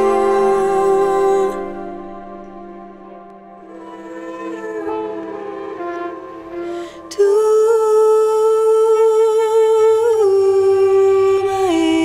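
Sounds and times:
person humming folk melody: 0:00.0 - 0:12.0.

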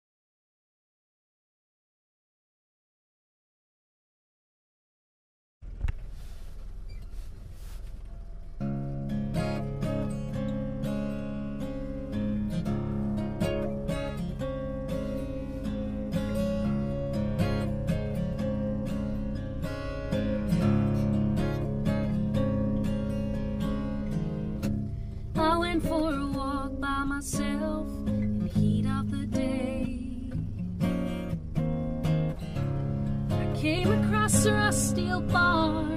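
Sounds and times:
low steady rumble: 0:05.6 - 0:35.9
fingerpicked acoustic guitar: 0:05.7 - 0:35.9.

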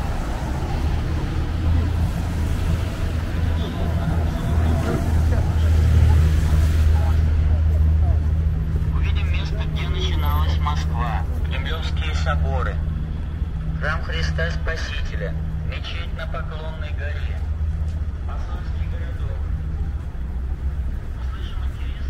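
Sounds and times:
low engine rumble: 0:00.0 - 0:22.0
passers-by talking: 0:00.0 - 0:22.0.

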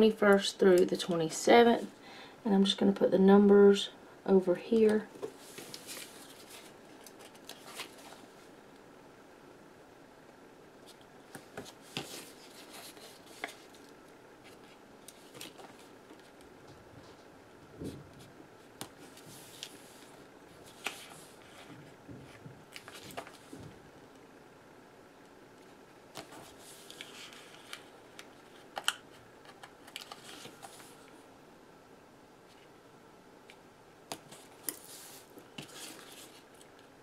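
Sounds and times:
light paper rustle: 0:04.8 - 0:08.3, 0:29.5 - 0:31.2, 0:34.3 - 0:36.8
light paper rustling: 0:04.8 - 0:08.5, 0:10.9 - 0:17.3, 0:17.9 - 0:23.8, 0:26.2 - 0:31.2, 0:34.2 - 0:36.8.

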